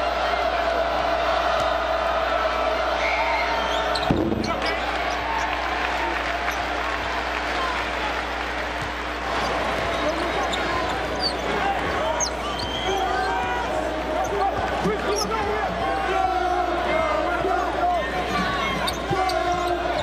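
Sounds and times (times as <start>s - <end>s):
arena crowd noise: 0.0s - 20.0s.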